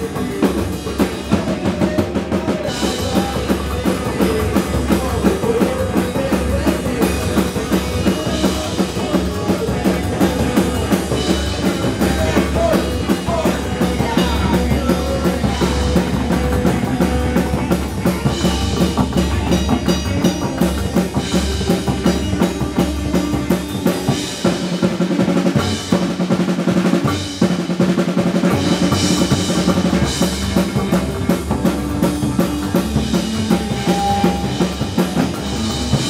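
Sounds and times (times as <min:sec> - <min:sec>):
live band playing: 0:00.0 - 0:36.0.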